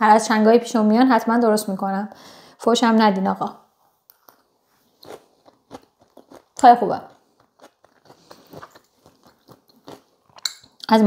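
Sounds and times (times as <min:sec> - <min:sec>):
person chewing food: 0:04.1 - 0:10.9.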